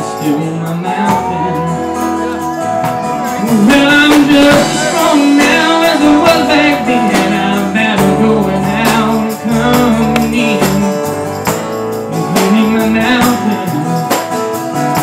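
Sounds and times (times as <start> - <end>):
acoustic guitar: 0.0 - 15.0
drum kit steady beat: 2.8 - 15.0.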